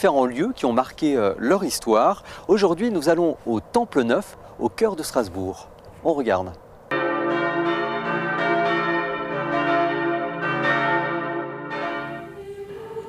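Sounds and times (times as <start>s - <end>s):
church bells pealing: 6.9s - 13.0s.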